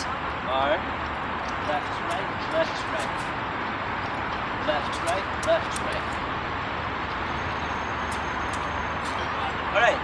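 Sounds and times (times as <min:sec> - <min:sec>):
city traffic rumble: 0:00.0 - 0:10.0.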